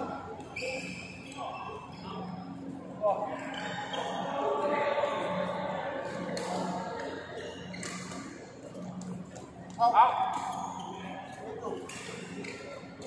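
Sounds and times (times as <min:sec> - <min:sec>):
shoe squeaks on court floor: 0:00.4 - 0:02.0, 0:03.4 - 0:04.3.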